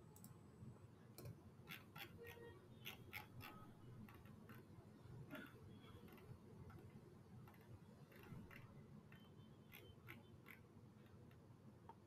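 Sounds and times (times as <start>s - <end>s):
mouse scroll wheel clicks: 1.2s - 4.7s, 5.9s - 11.4s.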